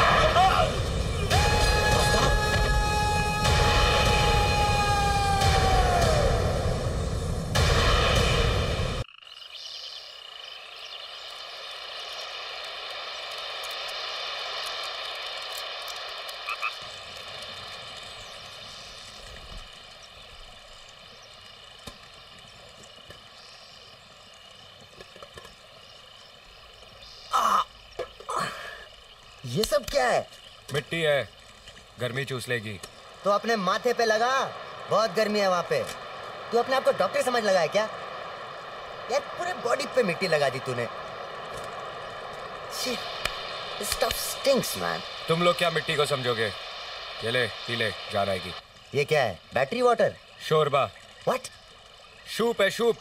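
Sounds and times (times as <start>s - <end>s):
dense din: 0.0s - 9.0s.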